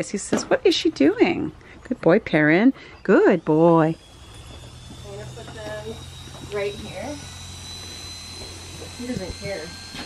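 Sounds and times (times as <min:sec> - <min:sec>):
electric clippers whining: 0:00.0 - 0:10.0.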